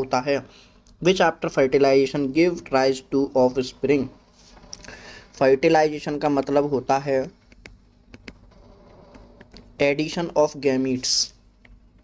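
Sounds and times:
stylus tapping on tablet screen: 7.4s - 9.7s.

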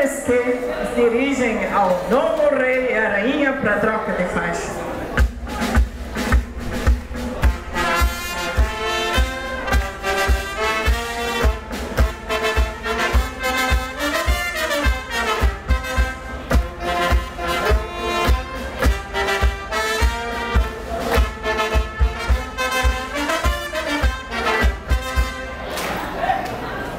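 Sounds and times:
brass band playing: 3.6s - 25.8s.

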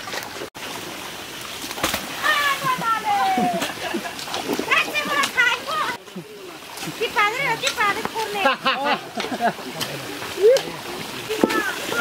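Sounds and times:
splashing in muddy water: 0.0s - 12.0s
people calling out: 2.2s - 3.7s.

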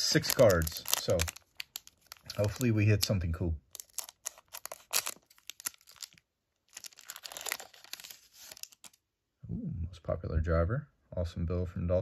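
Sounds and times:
foil wrapper crinkling: 0.0s - 9.0s.

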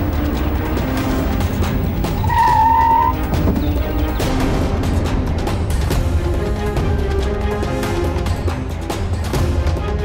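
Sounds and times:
car tyres screeching: 0.0s - 4.2s
background music: 0.0s - 10.0s.

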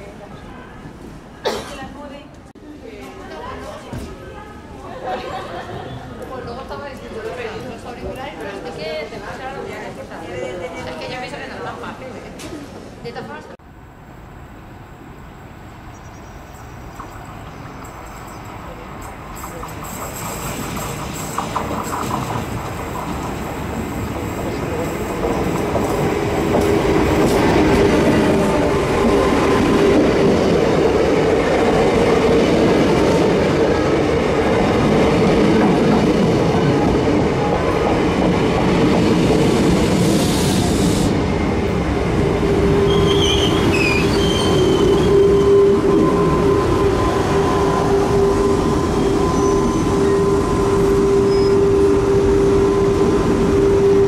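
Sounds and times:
steady train whine: 13.6s - 54.0s
electric train braking to a stop: 42.3s - 54.0s
high wheel squeals: 42.6s - 52.9s.

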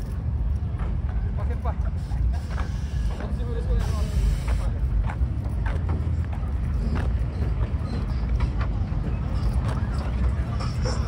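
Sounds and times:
car engines rumbling: 0.0s - 11.0s
people talking: 1.1s - 11.0s.

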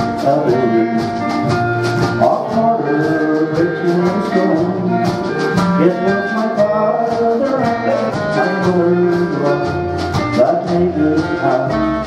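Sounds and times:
melody of held notes: 0.0s - 12.0s
steady drum beat: 0.0s - 12.0s.

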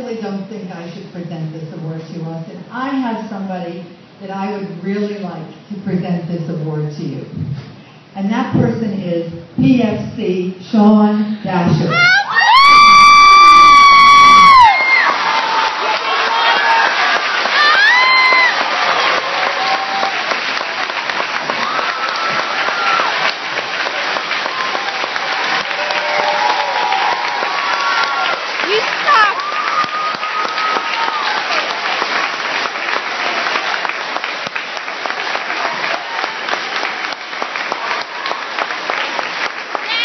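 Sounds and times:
voices calling out and cheering: 11.9s - 20.4s, 24.0s - 31.9s
audience applauding: 12.5s - 40.0s.

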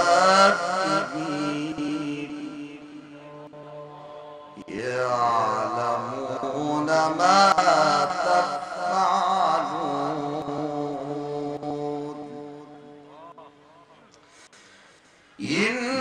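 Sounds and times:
man reciting melodically: 0.0s - 14.6s, 15.4s - 16.0s.

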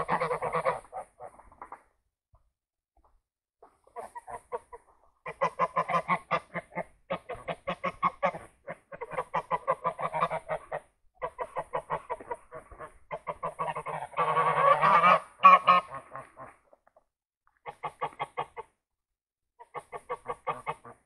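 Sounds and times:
geese honking: 0.0s - 1.3s, 5.2s - 16.6s.

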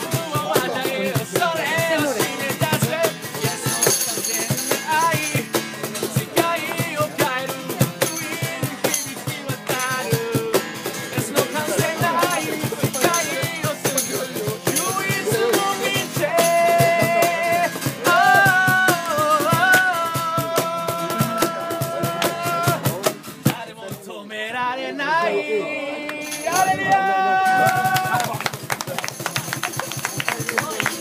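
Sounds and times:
cajon beat: 0.0s - 24.2s, 26.1s - 31.0s
strummed acoustic guitar: 0.0s - 24.6s
man singing: 0.0s - 28.4s.

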